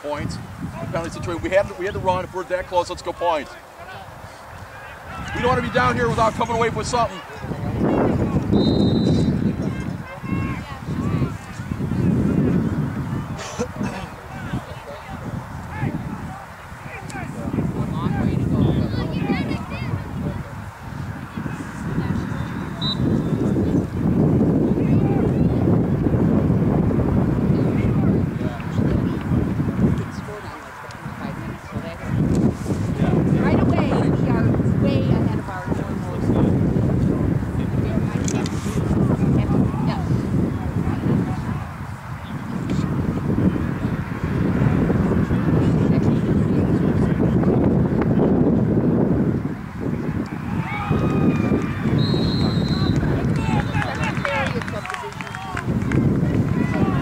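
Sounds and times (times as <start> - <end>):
wind noise on microphone: 0.0 - 57.0.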